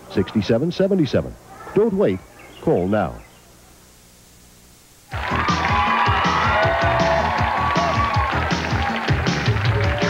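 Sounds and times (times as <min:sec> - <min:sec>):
audience clapping and cheering: 0:05.1 - 0:10.0
upbeat theme music with beat: 0:05.2 - 0:10.0.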